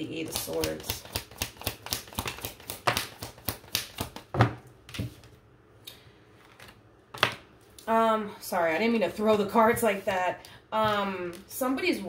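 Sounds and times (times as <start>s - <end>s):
playing cards being shuffled: 0.3s - 5.4s, 6.4s - 7.4s.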